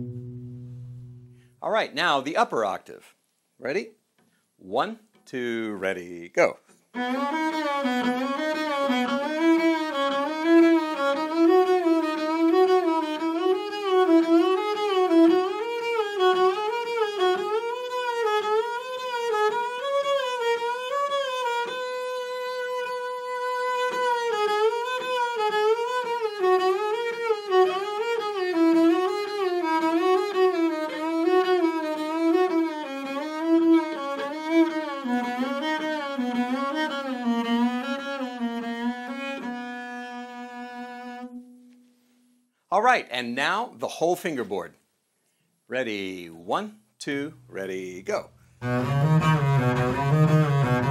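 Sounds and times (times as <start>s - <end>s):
bowed double bass: 0.0s - 1.6s, 47.2s - 50.9s.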